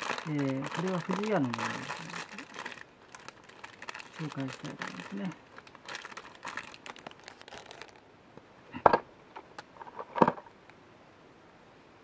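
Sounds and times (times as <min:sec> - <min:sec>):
plastic wrapper crinkling: 0:00.0 - 0:08.1.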